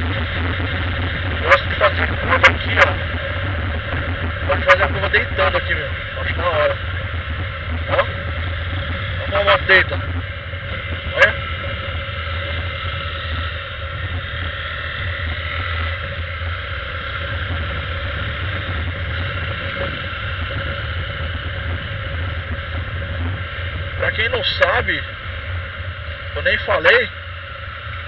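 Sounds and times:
motorcycle engine running: 0.0 - 28.0
wind rushing over microphone: 0.0 - 28.0.

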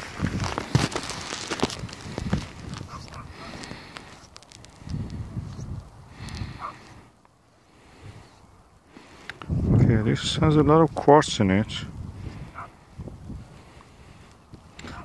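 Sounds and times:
low rumbles: 0.0 - 7.1
crackling handling noise: 0.0 - 7.4.

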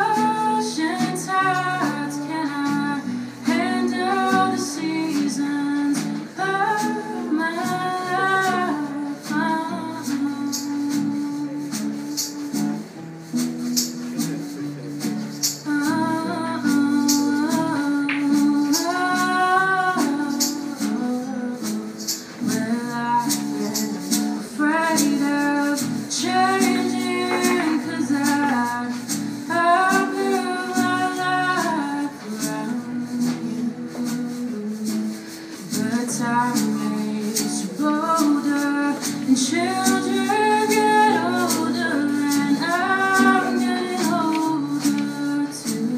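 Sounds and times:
drum kit: 0.0 - 45.9
guitars holding chords: 0.0 - 45.9
hand shaker marking the beat: 0.0 - 45.9.

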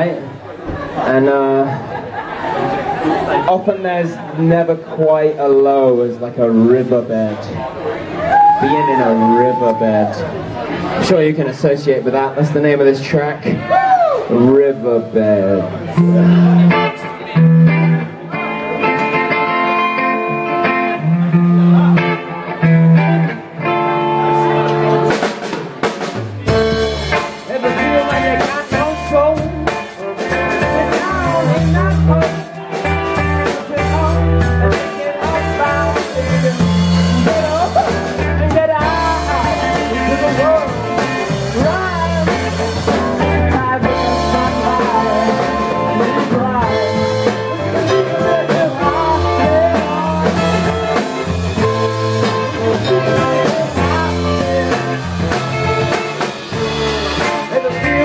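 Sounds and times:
bass guitar: 0.0 - 58.0
drum kit: 12.4 - 58.0
electric guitar bending notes: 14.2 - 58.0.

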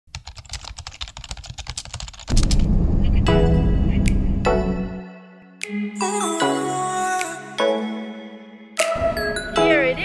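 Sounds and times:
loud low rumble: 2.3 - 5.0
background music: 3.2 - 10.0.

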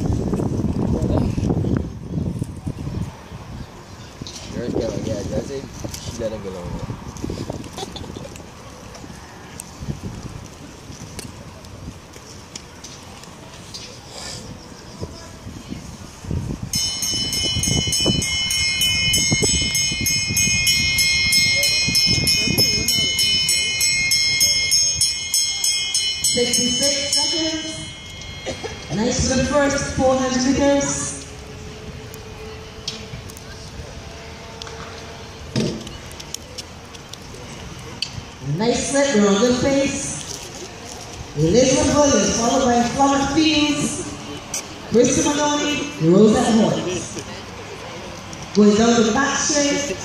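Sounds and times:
people talking and calling out: 0.7 - 50.0
voices: 0.9 - 50.0
bell rung rapidly: 16.7 - 30.0.

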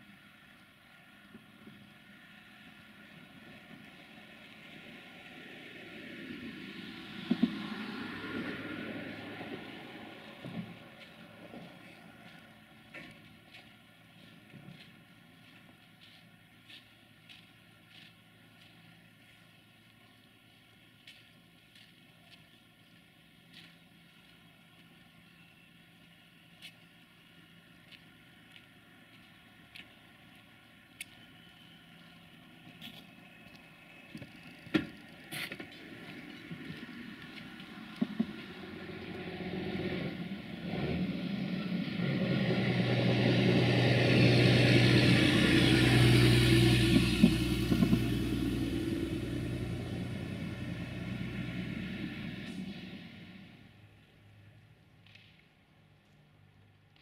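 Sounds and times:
lorry engine and road noise: 0.0 - 57.0.

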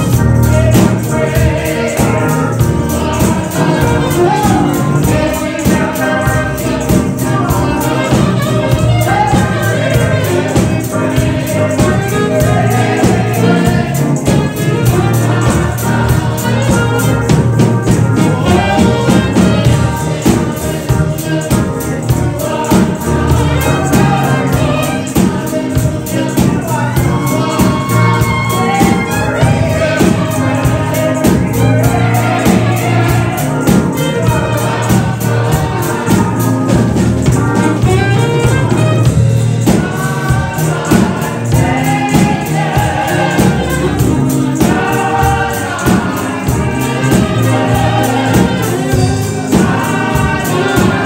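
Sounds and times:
tambourine on steady beat: 0.0 - 51.0
vocal group singing in harmony: 0.0 - 51.0.

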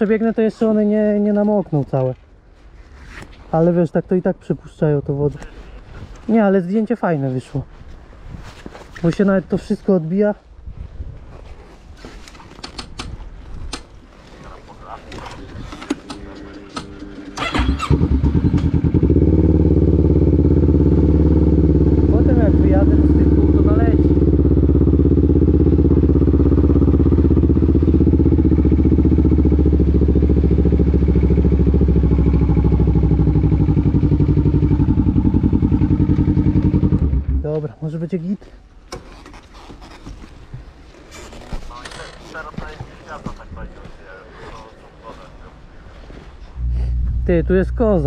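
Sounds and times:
quad engine running: 15.2 - 37.4, 46.6 - 48.0.

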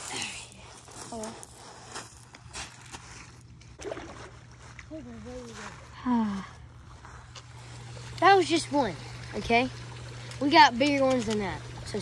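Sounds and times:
footsteps crunching on gravel: 0.0 - 7.9
water sloshing: 0.0 - 12.0.

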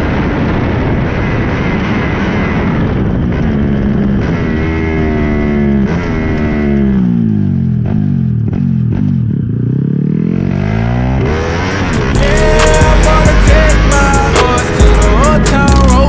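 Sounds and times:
moped engines at full throttle: 0.0 - 16.0.

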